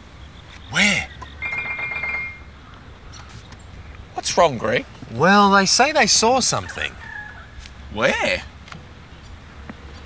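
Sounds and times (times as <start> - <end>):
high trilling warble: 1.0 - 2.5.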